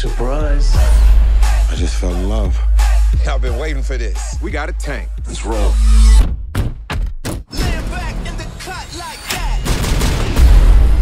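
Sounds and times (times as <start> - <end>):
heavy bass beat: 0.0 - 6.5
music: 0.0 - 11.0.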